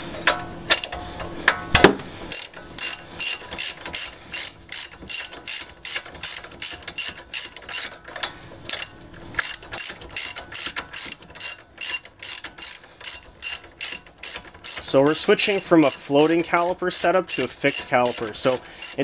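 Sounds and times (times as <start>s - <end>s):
socket ratchet clicking: 0.7s - 1.0s, 2.3s - 8.0s, 8.7s - 19.0s.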